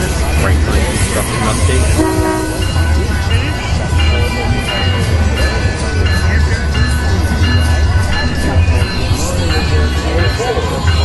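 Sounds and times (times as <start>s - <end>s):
music with bass beat: 0.0s - 11.0s
voices: 0.0s - 11.0s
train horn: 1.9s - 2.8s.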